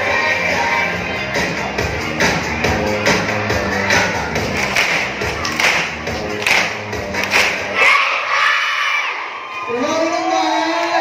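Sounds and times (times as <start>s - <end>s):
dance music: 0.0s - 11.0s
children shouting and cheering: 7.2s - 11.0s.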